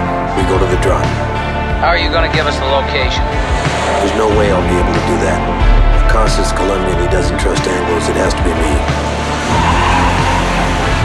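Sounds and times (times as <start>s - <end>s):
car tyres skidding: 8.9s - 11.0s.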